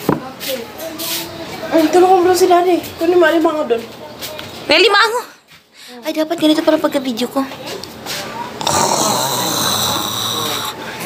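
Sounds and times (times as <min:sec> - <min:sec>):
person growling like a zombie: 0:08.6 - 0:10.8.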